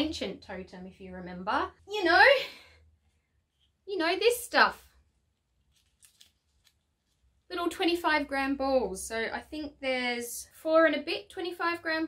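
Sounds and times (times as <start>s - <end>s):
paper crinkling in fingers: 5.5s - 7.4s.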